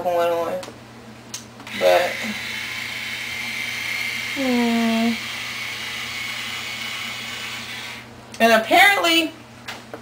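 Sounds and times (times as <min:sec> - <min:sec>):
hair styler motor whirring: 0:01.7 - 0:08.1.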